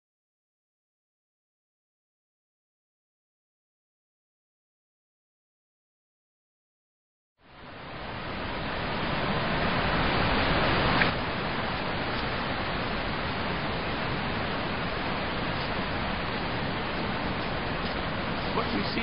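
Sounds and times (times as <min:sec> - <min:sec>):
rocky stream rushing over rapids: 0:07.5 - 0:19.0.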